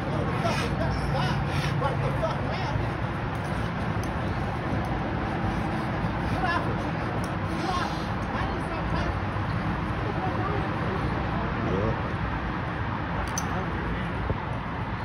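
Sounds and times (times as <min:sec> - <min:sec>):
indistinct voices talking: 0:00.0 - 0:15.0
outdoor background rumble: 0:00.0 - 0:15.0.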